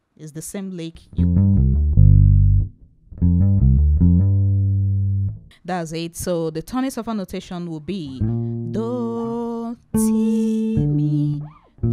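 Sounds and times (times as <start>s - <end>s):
electric bass played fingerstyle: 1.1s - 5.5s, 8.1s - 11.9s.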